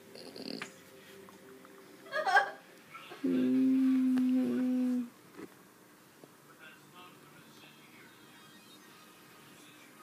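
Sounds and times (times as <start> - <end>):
person humming a low note: 3.2 - 5.1.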